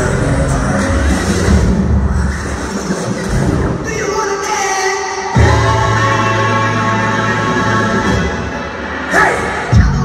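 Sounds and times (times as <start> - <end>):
dance music with heavy bass: 0.0 - 3.9.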